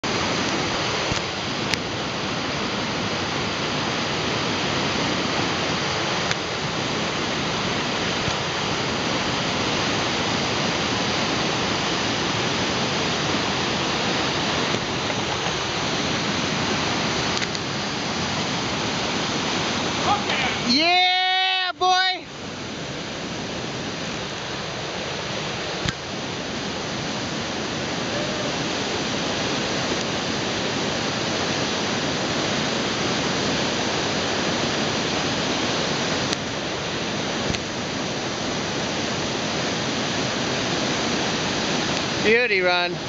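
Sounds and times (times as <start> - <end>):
river rapids rushing: 0.0 - 43.0.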